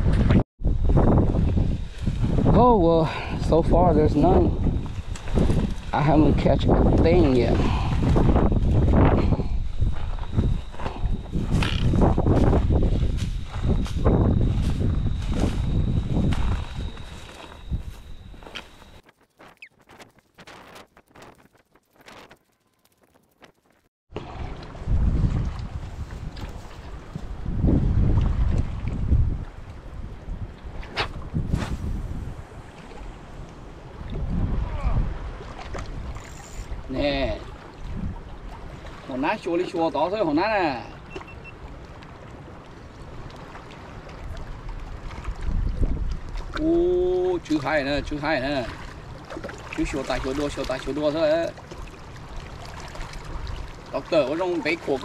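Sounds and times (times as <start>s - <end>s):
wind gusting on microphone: 0.0s - 22.4s, 24.2s - 39.5s, 43.9s - 54.2s
waves lapping at rocky shore: 31.8s - 55.0s.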